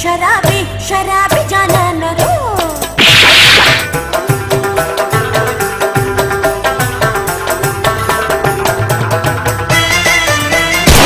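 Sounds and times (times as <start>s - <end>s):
music: 0.0s - 11.0s
falling gliding tones: 3.0s - 3.9s
loud noisy whoosh: 3.0s - 3.9s.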